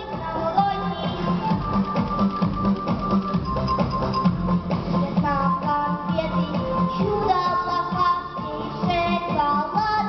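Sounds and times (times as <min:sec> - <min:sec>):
girl singing into a microphone: 0:00.0 - 0:01.6, 0:05.0 - 0:10.0
backing music: 0:00.0 - 0:10.0.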